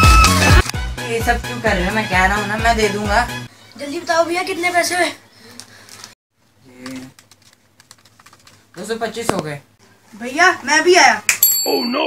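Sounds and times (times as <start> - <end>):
fingers tapping phone keys: 7.1 - 8.6.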